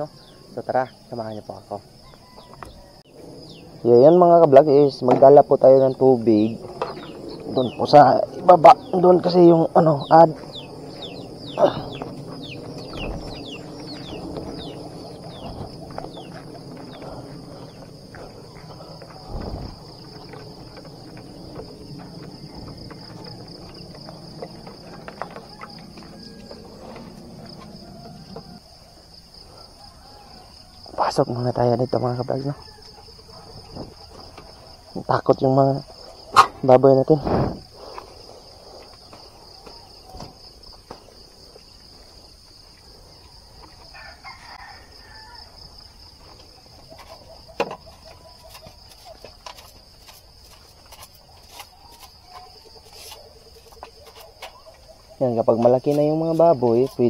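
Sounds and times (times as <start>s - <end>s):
insects chirring: 0.0s - 57.0s
footsteps in slippers on dirt: 10.2s - 28.6s, 37.5s - 57.0s.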